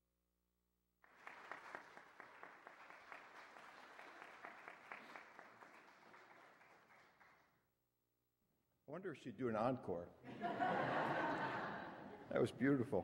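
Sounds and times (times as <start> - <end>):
crowd applauding: 1.0 - 7.5.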